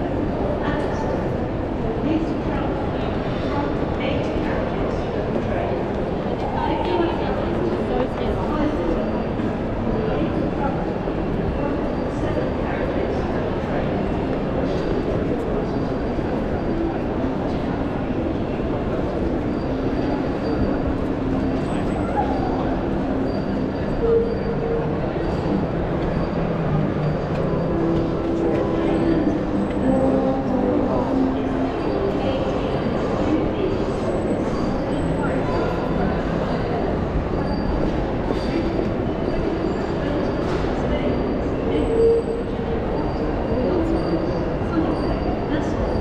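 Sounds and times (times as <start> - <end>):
crowd hubbub echoing in hall: 0.0 - 46.0
concourse low drone: 13.7 - 34.2.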